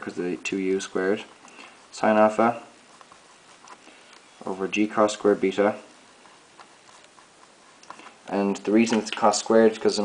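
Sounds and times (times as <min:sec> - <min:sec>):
marker writing on whiteboard: 0:04.9 - 0:08.2.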